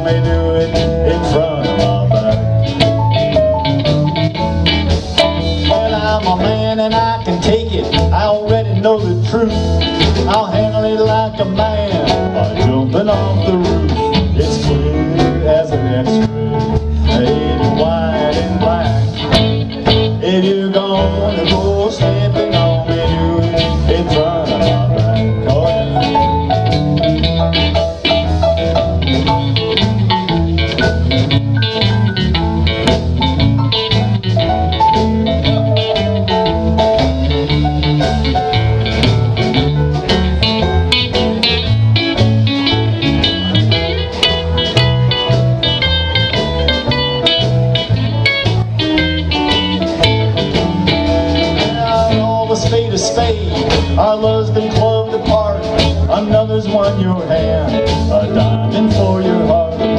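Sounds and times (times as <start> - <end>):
country-rock band instrumental: 0.0 - 59.9.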